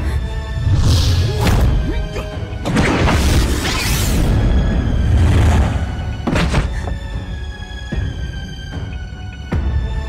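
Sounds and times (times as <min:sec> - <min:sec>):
dramatic film music: 0:00.0 - 0:10.0.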